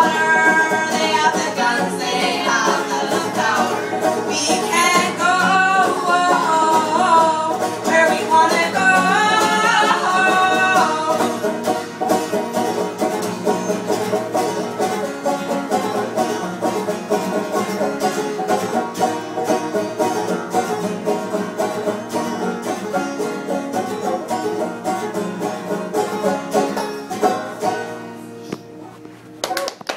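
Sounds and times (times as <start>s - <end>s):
person singing: 0.0s - 11.5s
acoustic guitar strumming: 0.0s - 29.4s
banjo picking: 0.0s - 29.6s.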